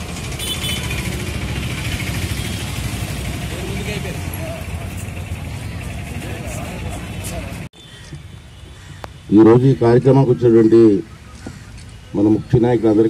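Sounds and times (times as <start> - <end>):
faint voices talking: 3.4 - 7.7.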